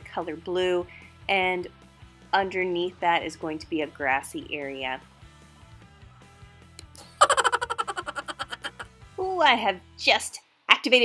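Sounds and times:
quiet background music: 0.0s - 5.2s, 9.2s - 11.0s.

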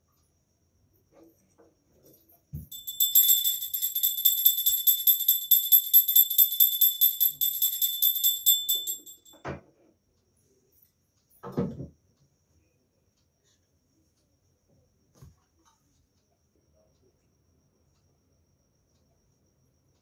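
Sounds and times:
hand bell ringing rapidly: 2.7s - 9.4s.

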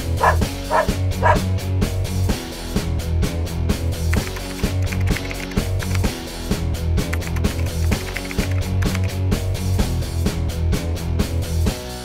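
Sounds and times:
dog barking: 0.0s - 1.5s.

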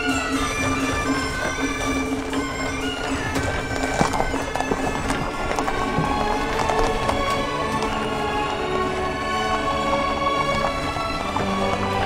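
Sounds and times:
horse hooves clip-clopping: 0.0s - 12.0s
reedy wind instruments: 0.0s - 12.0s
steady drone: 0.0s - 12.0s.

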